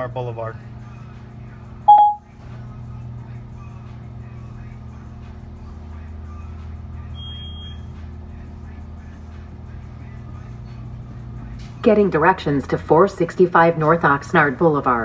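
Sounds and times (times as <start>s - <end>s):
faint background music: 0.0s - 15.0s
low room hum: 0.0s - 15.0s
brief high beep: 1.9s - 2.2s
short electronic chime: 1.9s - 2.2s.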